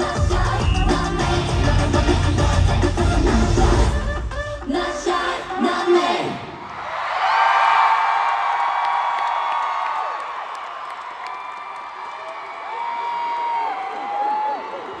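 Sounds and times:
concert audience screaming and cheering: 0.0s - 15.0s.

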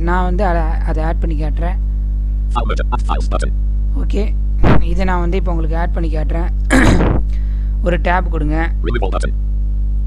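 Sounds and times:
low electrical hum: 0.0s - 10.0s
person coughing: 6.7s - 7.2s.

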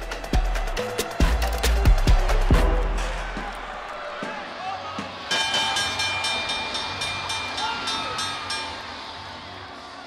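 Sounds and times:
crowd noise: 0.0s - 10.0s
ring bell struck rapidly: 5.3s - 9.0s.

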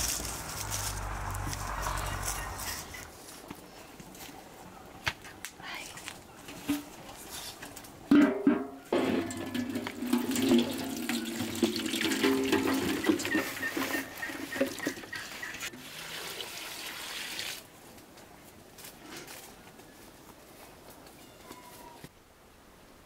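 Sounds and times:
metal pan clanking onto stand: 8.1s - 13.5s.

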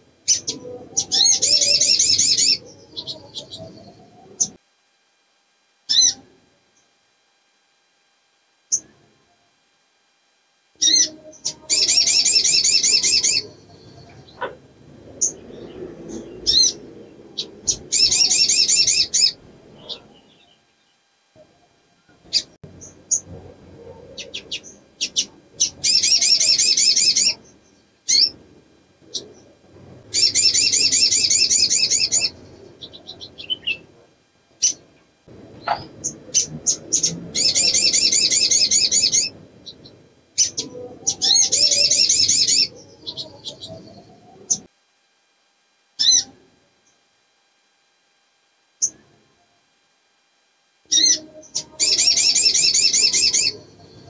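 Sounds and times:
bird high trills: 0.2s - 4.6s, 5.9s - 6.2s, 10.8s - 20.7s, 24.0s - 28.4s, 30.1s - 33.9s, 35.6s - 44.7s, 46.0s - 46.3s, 50.9s - 54.0s.

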